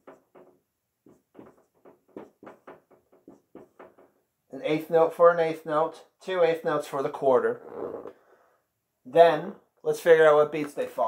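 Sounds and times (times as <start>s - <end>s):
marker strokes on whiteboard: 0.0s - 4.1s.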